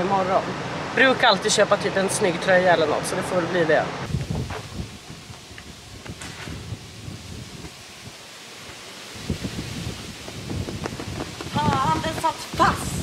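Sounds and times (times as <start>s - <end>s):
wind buffeting microphone: 4.0s - 13.0s
dull low thumps: 4.1s - 7.8s, 9.3s - 13.0s.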